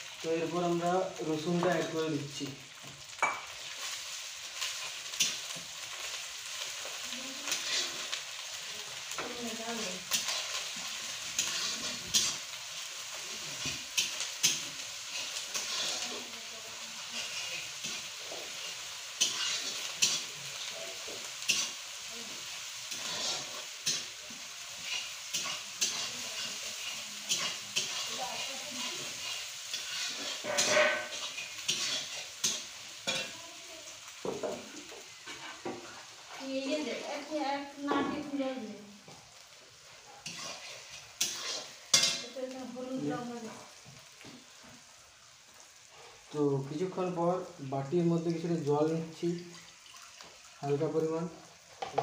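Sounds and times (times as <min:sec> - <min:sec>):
onions sizzling in a pan: 0:00.0 - 0:52.0
metal spatula scraping pan: 0:07.5 - 0:08.2, 0:09.2 - 0:12.5, 0:13.1 - 0:16.4, 0:17.0 - 0:21.8, 0:22.9 - 0:33.3, 0:35.2 - 0:36.4, 0:40.2 - 0:42.4.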